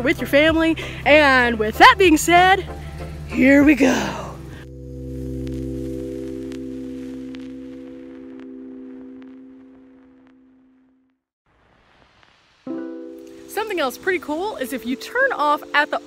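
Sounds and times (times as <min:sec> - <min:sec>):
held music chord: 0:00.0 - 0:10.1, 0:12.7 - 0:16.0.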